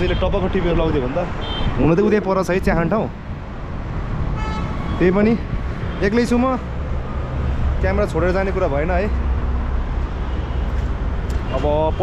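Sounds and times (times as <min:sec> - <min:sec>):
man talking: 0:00.0 - 0:03.2, 0:05.0 - 0:06.7, 0:07.8 - 0:09.2, 0:11.5 - 0:12.0
low rumble of road traffic: 0:00.0 - 0:12.0.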